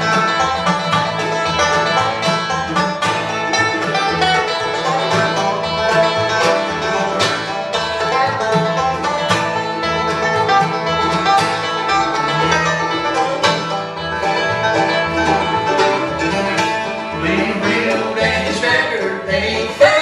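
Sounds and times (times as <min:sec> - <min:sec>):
acoustic guitar: 0:00.0 - 0:20.0
banjo lead: 0:00.0 - 0:20.0
mandolin: 0:00.0 - 0:20.0
upright bass: 0:00.0 - 0:20.0.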